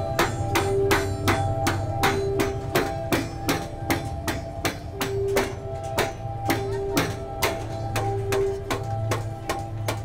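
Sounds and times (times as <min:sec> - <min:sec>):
hand hammer striking: 0:00.0 - 0:10.0
steady tones: 0:00.0 - 0:10.0.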